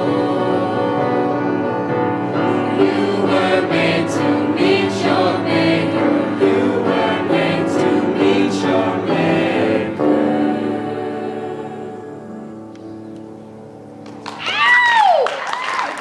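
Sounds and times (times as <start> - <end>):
young voices singing in harmony: 0.0 - 12.7.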